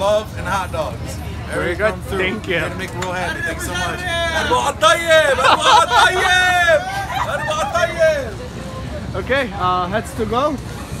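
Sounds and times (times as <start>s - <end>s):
crowd babble: 0.0s - 11.0s
people talking and calling out: 0.0s - 11.0s.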